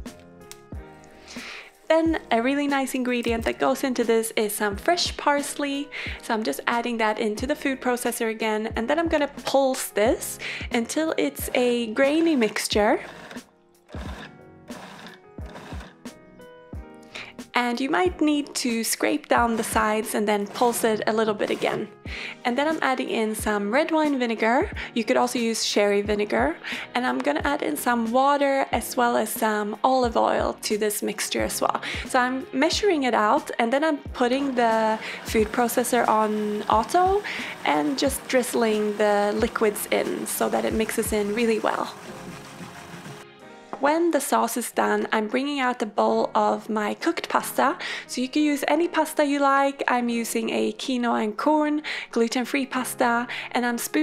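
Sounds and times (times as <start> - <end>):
background music: 0.0 - 54.0
food processor whirring: 12.1 - 16.0, 19.5 - 21.9, 34.4 - 43.2.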